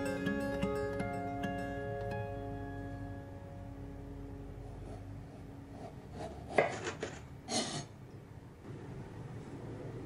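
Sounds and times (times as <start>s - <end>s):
knife scraping wood: 6.1s - 7.2s.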